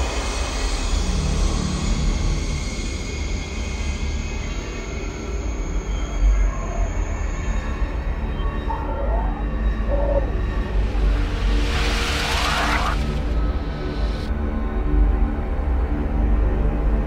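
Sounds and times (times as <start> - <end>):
sustained high tones: 6.2 - 13.1.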